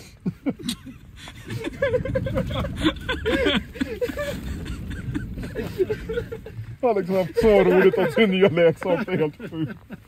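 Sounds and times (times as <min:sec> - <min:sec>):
low steady rumble: 0:00.0 - 0:10.0
men laughing: 0:00.0 - 0:10.0.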